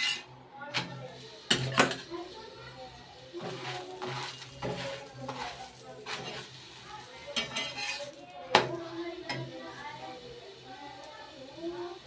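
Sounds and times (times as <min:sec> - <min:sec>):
spatula scraping on griddle: 0:00.0 - 0:10.0.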